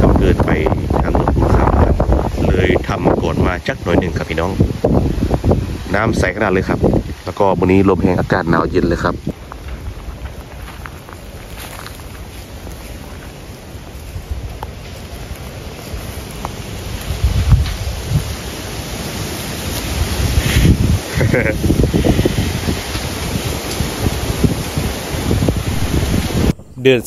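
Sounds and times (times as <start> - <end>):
wind buffeting microphone: 0.0 - 27.0
person speaking: 25.8 - 27.0.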